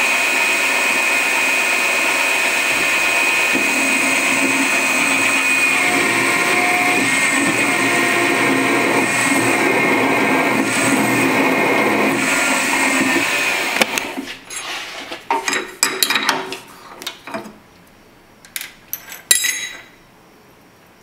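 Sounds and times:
drill bit cutting metal: 0.0 - 14.1
milling machine spindle whine: 0.0 - 14.2.

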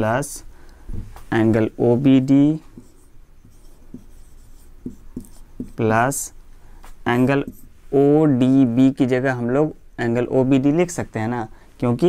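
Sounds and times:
marker pen scratching on whiteboard: 1.4 - 6.3, 7.1 - 7.8.

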